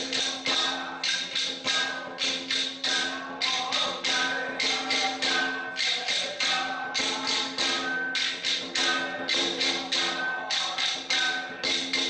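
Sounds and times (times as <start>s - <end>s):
rhythmic clashing strikes: 0.0s - 12.0s
steady ringing tone: 0.0s - 12.0s.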